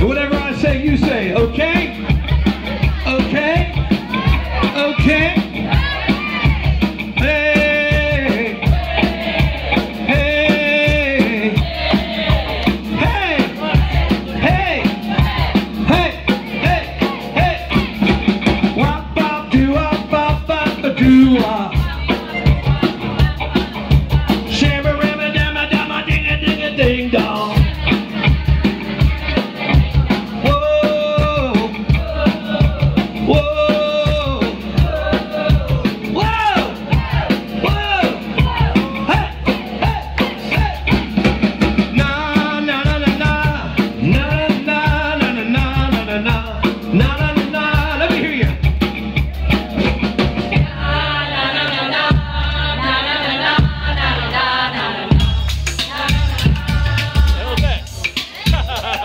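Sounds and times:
singer's vocals: 0:00.0 - 0:48.6, 0:49.3 - 0:59.0
drum kit beat: 0:00.0 - 0:59.0
electric bass guitar: 0:00.0 - 0:59.0.

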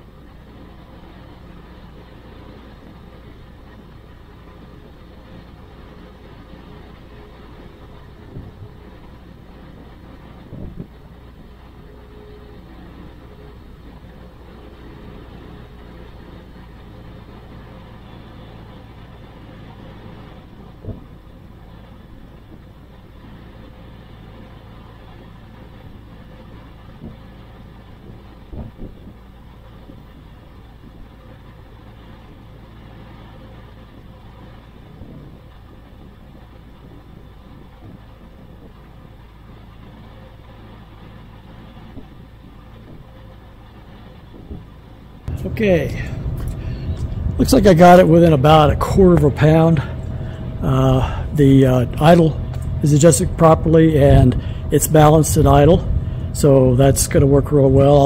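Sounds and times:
aircraft engine idling: 0:00.0 - 0:58.0.

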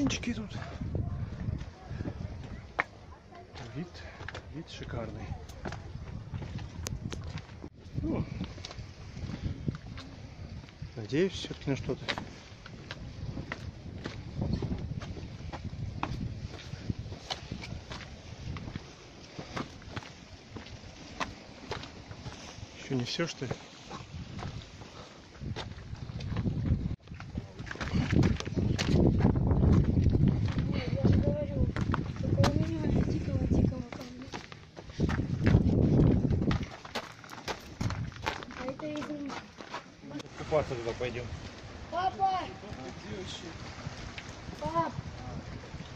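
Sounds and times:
footsteps on dirt and stone: 0:00.8 - 0:10.8, 0:11.4 - 0:22.7, 0:23.4 - 0:40.4.

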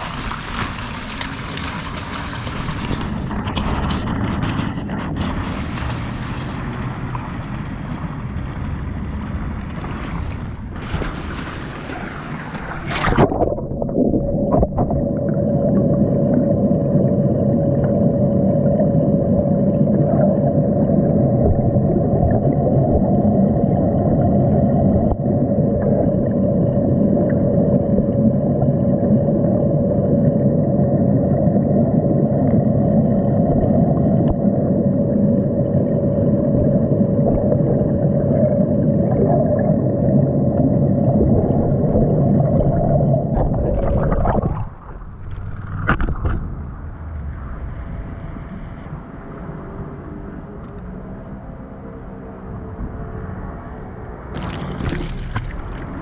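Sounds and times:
constant humming tone: 0:00.0 - 0:56.0
low rumble of moving water: 0:00.0 - 0:56.0.

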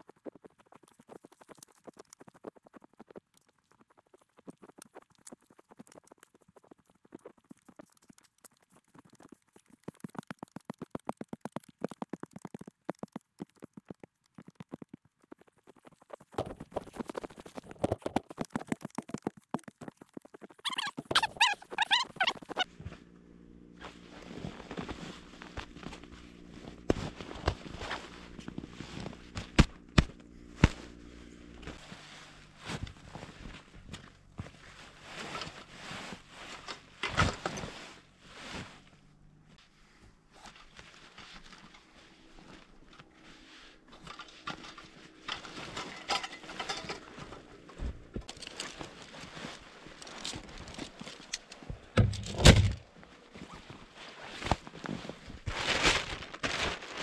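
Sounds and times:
rustling and knocks of gear: 0:09.0 - 0:39.6, 0:40.3 - 0:57.0.

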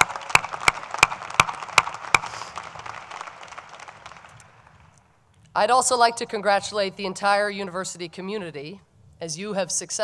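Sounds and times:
audience applause: 0:00.0 - 0:05.0
person clapping close to microphone: 0:00.0 - 0:05.0.

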